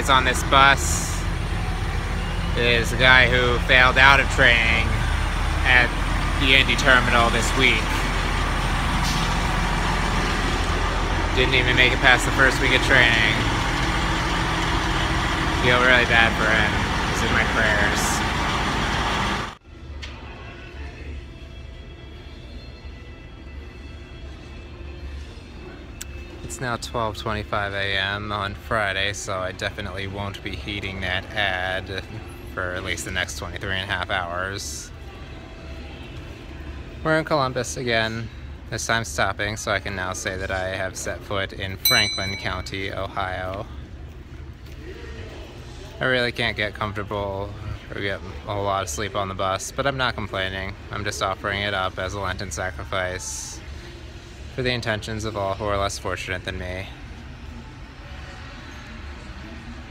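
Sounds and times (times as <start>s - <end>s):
diesel engine idling: 0.0s - 19.6s.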